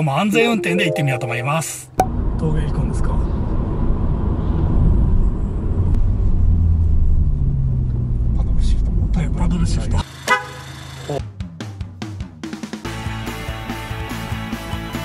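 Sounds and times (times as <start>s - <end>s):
car cabin engine and road noise: 2.0s - 10.1s.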